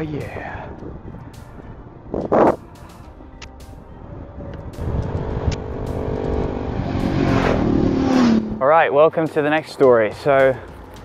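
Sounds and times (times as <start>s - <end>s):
wind and road noise: 0.0s - 11.0s
motorcycle engines approaching: 4.2s - 10.3s.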